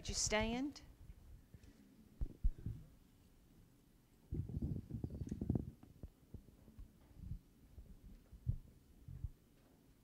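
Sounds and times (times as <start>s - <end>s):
dull low thumps: 4.3s - 6.1s, 7.2s - 9.4s.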